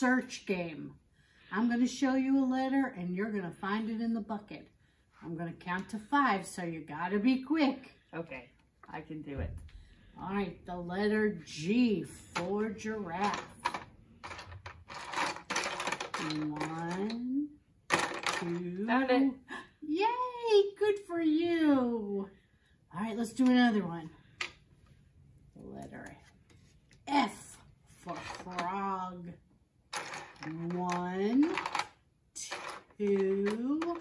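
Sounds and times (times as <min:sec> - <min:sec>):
plastic toy letters clattering: 0:13.1 - 0:17.2, 0:17.9 - 0:18.6, 0:28.1 - 0:28.8, 0:30.0 - 0:34.0.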